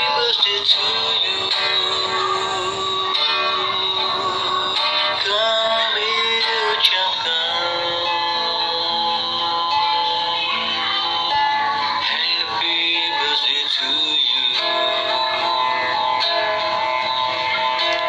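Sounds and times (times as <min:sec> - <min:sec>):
man singing slow song: 0:00.0 - 0:10.8, 0:12.0 - 0:15.5
guitar accompaniment: 0:00.0 - 0:18.0.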